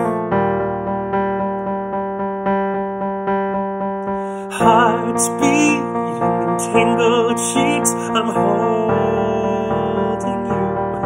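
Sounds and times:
piano chords: 0.0s - 11.0s
man singing with vibrato: 4.4s - 11.0s.

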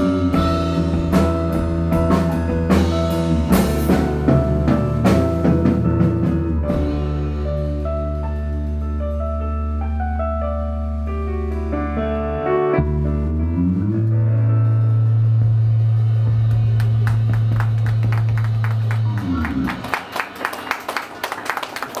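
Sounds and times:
held bass note: 0.0s - 20.0s
people clapping: 16.6s - 22.0s.

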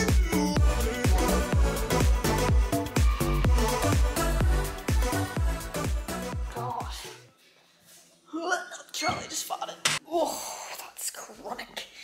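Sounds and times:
pop backing track: 0.0s - 7.2s.

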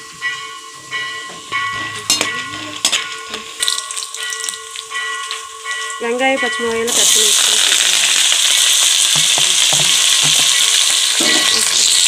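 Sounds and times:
seeds sizzling in hot oil: 3.6s - 4.9s, 6.9s - 12.0s
oil crackles: 6.9s - 12.0s.

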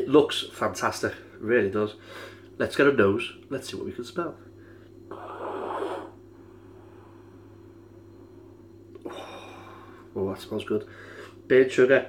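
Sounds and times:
steady low hum: 0.0s - 12.0s
man breathing through nose: 10.9s - 11.4s.

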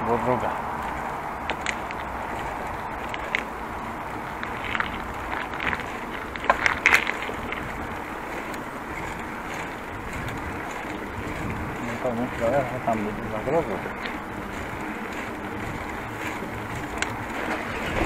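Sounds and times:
bicycle clicks and rattles: 0.0s - 18.0s
wind and tyre noise: 0.0s - 18.0s.

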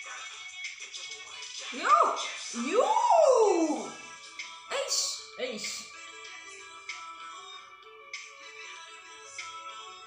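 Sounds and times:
music playing: 0.0s - 10.0s
woman exclaiming ooh: 1.8s - 4.0s.

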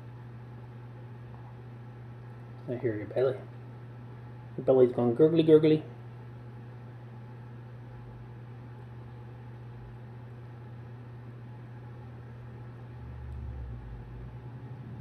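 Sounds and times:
low hum: 7.6s - 15.0s.

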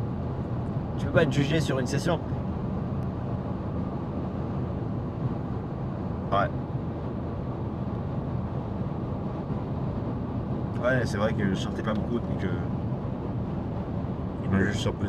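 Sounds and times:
car driving noise from inside: 0.0s - 15.0s.

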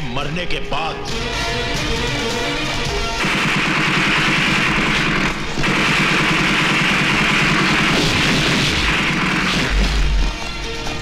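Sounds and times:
rapid gunfire: 3.2s - 10.5s.

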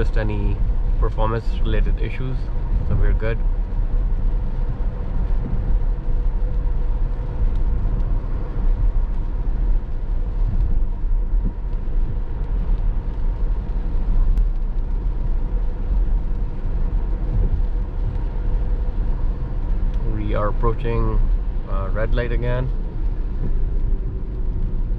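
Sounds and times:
tyres rumbling on wet pavement: 0.0s - 24.9s.

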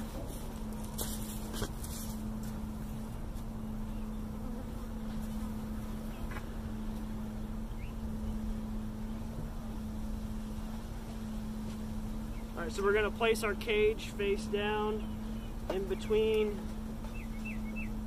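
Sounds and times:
bees buzzing: 0.0s - 18.0s.

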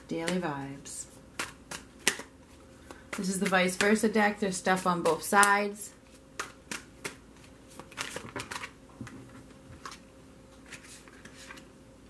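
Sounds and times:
cards being shuffled: 1.4s - 4.0s, 6.1s - 10.0s, 10.6s - 11.7s.

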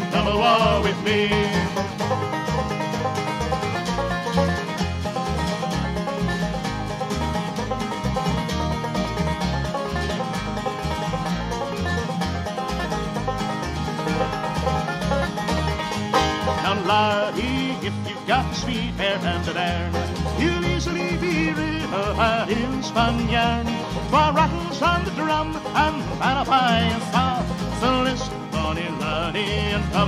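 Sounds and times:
person singing: 0.0s - 1.8s, 16.5s - 30.0s
plucked acoustic strings: 0.0s - 30.0s.

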